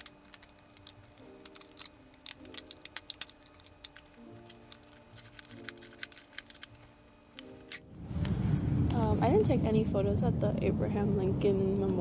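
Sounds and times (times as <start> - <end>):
camera and film clicks and taps: 0.0 - 7.8
soft background music chords: 0.0 - 12.0.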